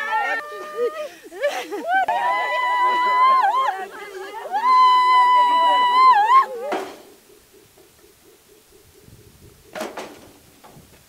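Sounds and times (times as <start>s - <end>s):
woman wailing in grief: 0.0s - 3.8s, 4.5s - 6.6s
faint rapid pulsing: 0.6s - 11.0s.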